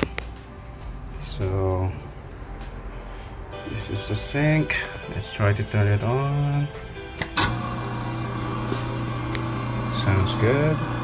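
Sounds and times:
garbage disposal motor humming: 7.2s - 11.0s.

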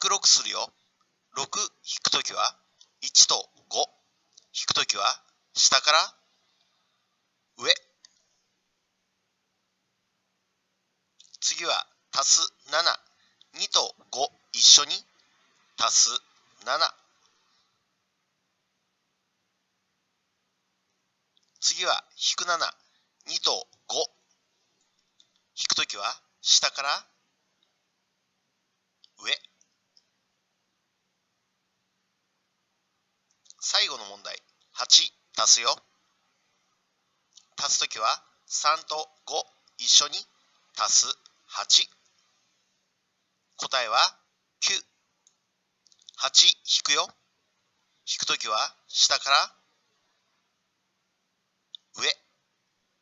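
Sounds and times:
faint bead clicks: 24.7s - 25.6s.

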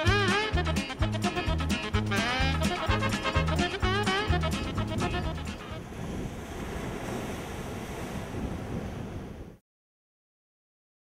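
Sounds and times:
upbeat swing music: 0.0s - 5.8s
ocean surf breaking on rocks: 1.3s - 9.6s.

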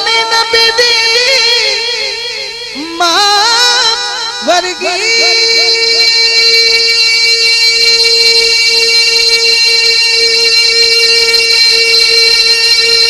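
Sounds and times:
man singing sustained high note: 0.0s - 13.0s.

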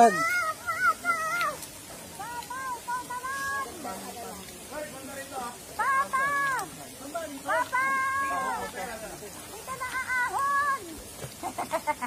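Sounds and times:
children squealing and calling out: 0.0s - 4.0s, 7.5s - 8.7s, 9.6s - 11.2s.

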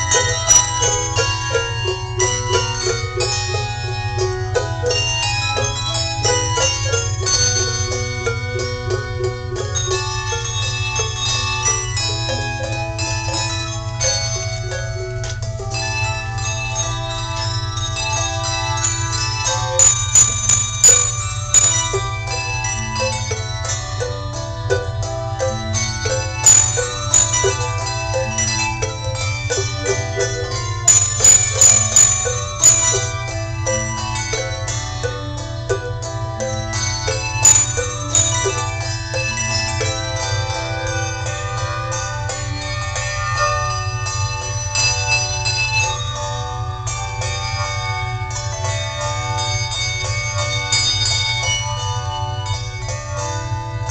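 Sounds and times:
handbell choir ringing: 0.0s - 53.9s
steady low hum: 0.0s - 53.9s.

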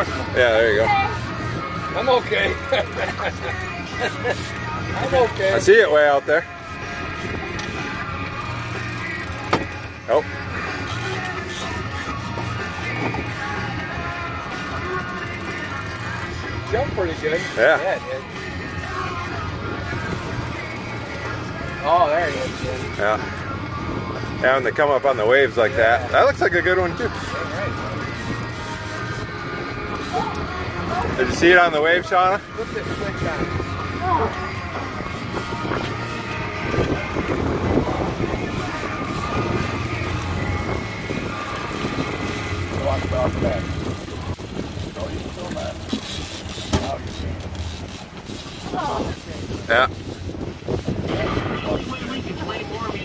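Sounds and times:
indistinct voices: 0.0s - 50.1s
boat engine humming: 0.0s - 53.0s
faint background music: 0.0s - 53.0s
water noise: 0.0s - 53.0s
wind: 0.0s - 53.0s.

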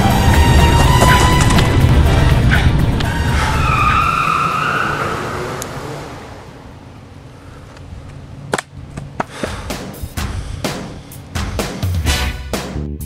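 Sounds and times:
tire squeal: 0.0s - 6.7s.

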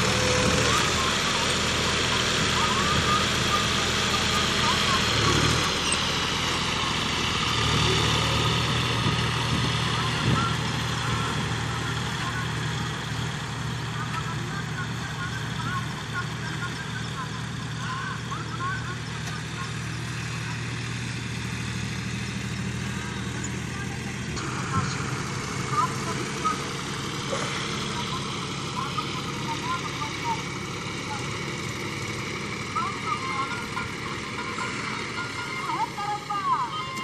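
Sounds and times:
tractor diesel engines running: 0.0s - 37.0s.

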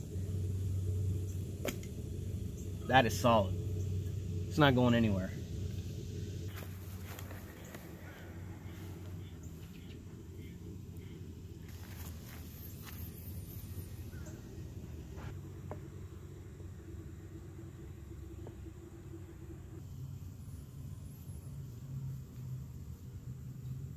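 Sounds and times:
steady low rumble: 0.0s - 23.9s
faint clicks and rustles: 6.5s - 10.0s.

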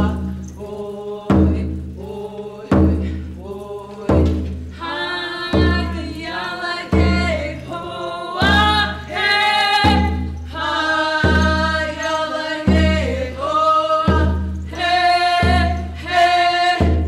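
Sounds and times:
group singing in unison: 0.0s - 17.0s
deep drum beat: 6.9s - 7.7s, 8.4s - 12.0s, 12.7s - 16.2s.

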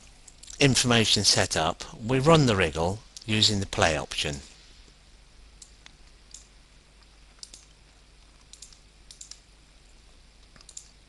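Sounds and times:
computer mouse clicks: 7.3s - 9.4s, 10.4s - 11.0s.

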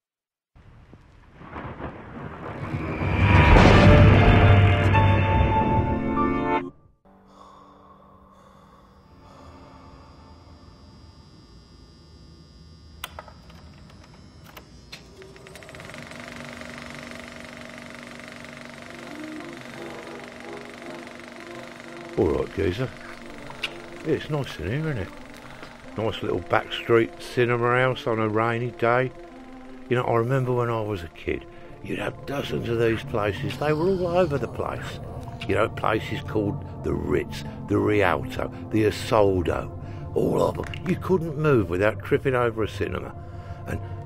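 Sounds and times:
rain: 0.6s - 3.2s
rumbling thunder: 1.2s - 4.7s
steady high tone: 7.1s - 38.2s
clicks: 13.0s - 22.2s, 22.8s - 27.3s
film projector clattering: 13.0s - 33.0s
faint music: 18.9s - 44.0s.

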